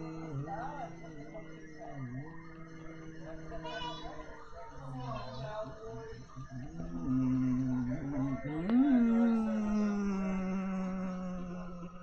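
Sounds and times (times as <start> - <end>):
long sliding vocal sound: 0.0 - 3.9, 6.2 - 12.0.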